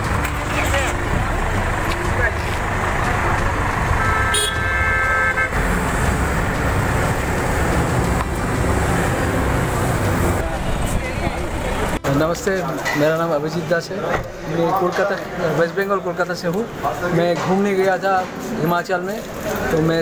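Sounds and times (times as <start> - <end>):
road traffic rumbling: 0.0 - 20.0
vehicle horn: 3.9 - 5.8.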